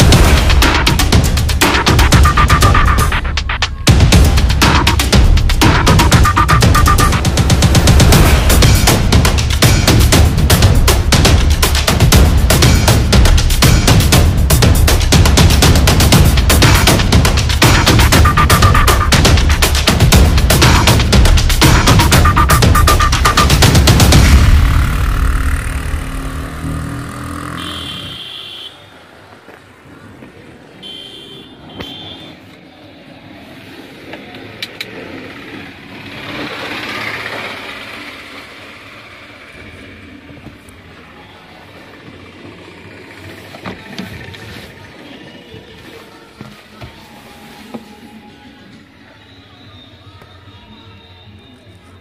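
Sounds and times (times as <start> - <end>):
music: 0.0 - 26.8, 43.7 - 52.0
low street noise: 0.0 - 52.0.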